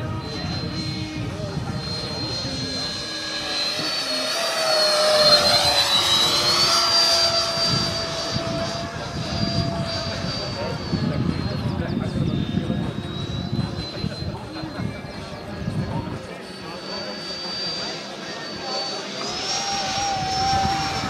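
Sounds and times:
model jet fan whining: 0.0s - 21.0s.

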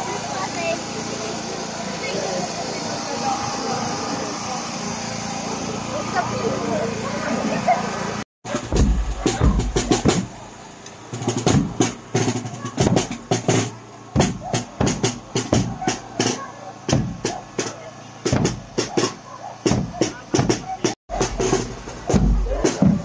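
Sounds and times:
crowd voices: 0.0s - 23.0s
bass drum beating: 8.5s - 10.4s, 11.2s - 23.0s
marching band playing: 8.5s - 10.4s, 11.0s - 23.0s.

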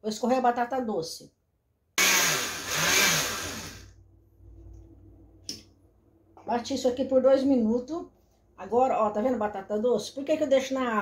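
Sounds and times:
blender running: 2.0s - 3.9s.

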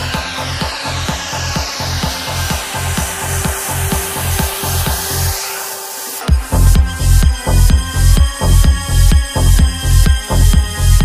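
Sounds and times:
bass and kick pulse: 0.0s - 11.0s
hissing noise sweep: 0.0s - 11.0s.

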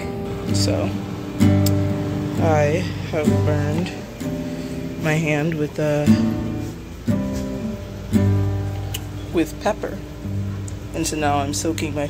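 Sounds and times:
acoustic guitar chords ringing: 0.0s - 12.0s.

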